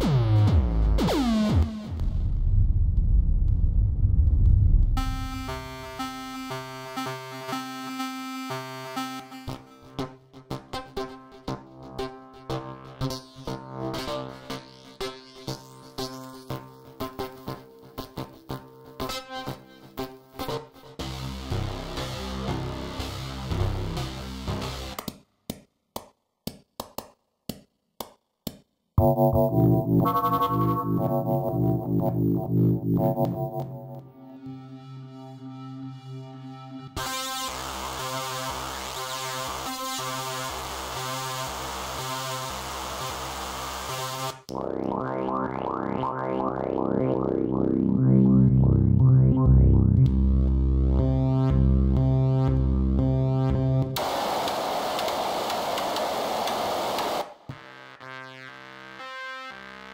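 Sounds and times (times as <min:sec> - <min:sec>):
buzzy synthesizer lead pattern: 0:00.0 - 0:03.8, 0:04.9 - 0:10.0, 0:29.0 - 0:52.3, 0:53.7 - 0:59.9
downward-sweeping synthesizer notes: 0:00.0 - 0:10.1, 0:29.0 - 0:43.2, 0:44.0 - 0:57.2
bright synth notes sequence: 0:29.0 - 0:34.9.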